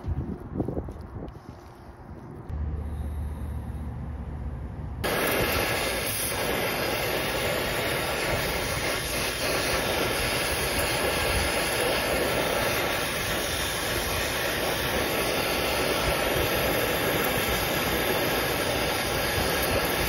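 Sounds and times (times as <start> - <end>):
torch flame rushing: 5.0 - 20.0.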